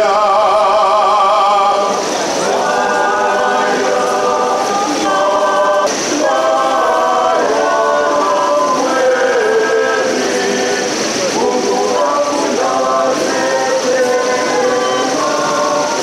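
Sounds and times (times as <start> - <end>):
choir singing a slow hymn: 0.0 - 16.0.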